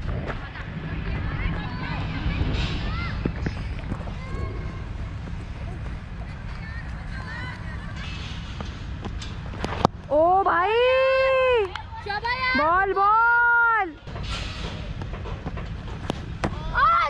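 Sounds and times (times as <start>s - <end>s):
low microphone rumble: 0.0s - 12.9s.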